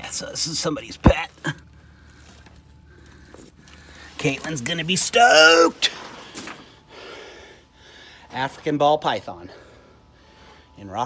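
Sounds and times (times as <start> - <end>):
man breathing: 1.7 - 4.2, 6.0 - 8.3, 9.4 - 10.8.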